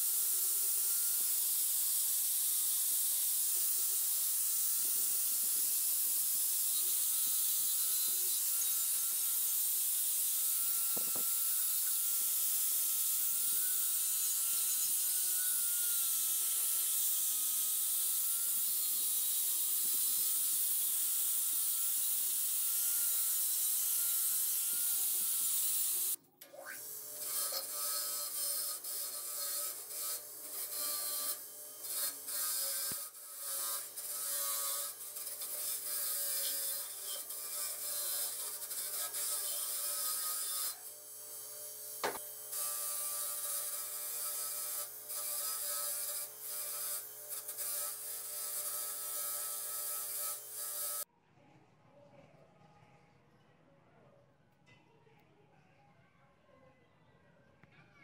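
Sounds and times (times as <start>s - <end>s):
angle grinder sanding metal: 0.0s - 51.1s
wire wheel grinder scratching metal: 0.0s - 51.1s.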